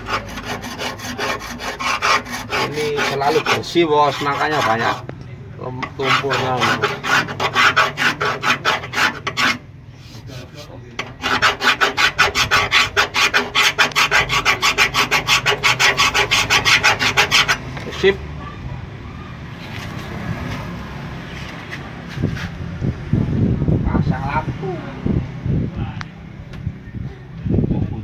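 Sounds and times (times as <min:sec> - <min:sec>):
sandpaper rubbing on metal: 0:00.0 - 0:05.0, 0:05.8 - 0:17.6.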